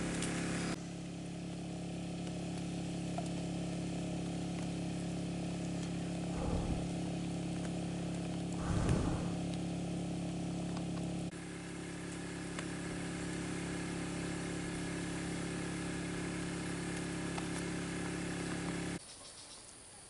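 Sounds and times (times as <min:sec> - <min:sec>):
small engine droning: 0:00.0 - 0:19.0
brief louder noise: 0:08.6 - 0:09.5.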